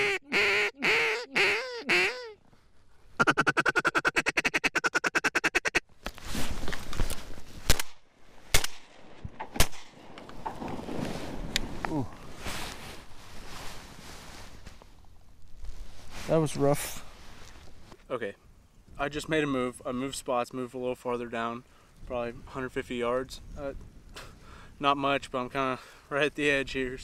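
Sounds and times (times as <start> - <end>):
duck call quacks: 0.0 - 2.4, 3.2 - 5.8
rustling: 5.9 - 18.0
loud shotgun shots: 7.7 - 10.0.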